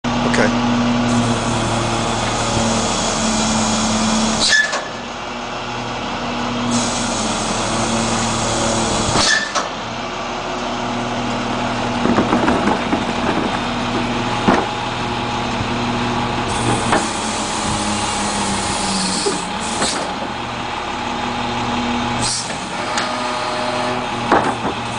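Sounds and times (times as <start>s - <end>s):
garbage truck engine running: 0.0s - 24.9s
hydraulic hissing: 1.1s - 5.0s, 6.7s - 9.8s, 16.5s - 20.3s, 22.2s - 24.1s.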